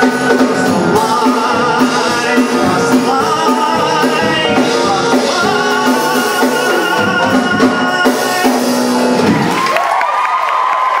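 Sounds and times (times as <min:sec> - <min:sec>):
audience cheering and applauding: 0:07.6 - 0:11.0.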